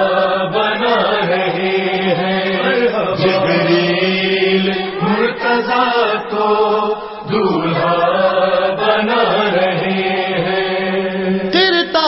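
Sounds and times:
man chanting devotional poem: 0:11.5 - 0:12.0.

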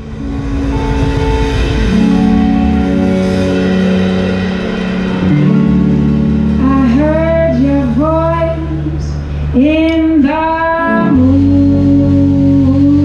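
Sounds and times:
live band playing: 0:00.0 - 0:13.0
woman singing: 0:06.6 - 0:13.0.

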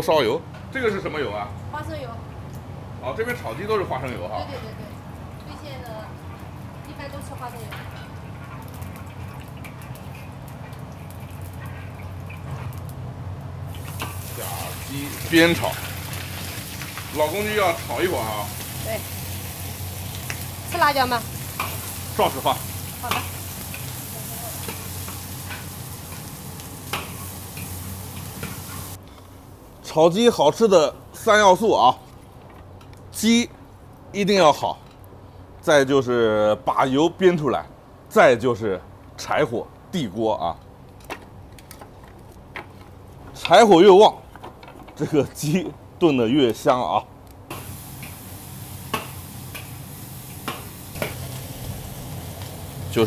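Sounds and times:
meat sizzling in a wok: 0:06.4 - 0:12.8, 0:13.6 - 0:29.6, 0:47.5 - 0:53.0.

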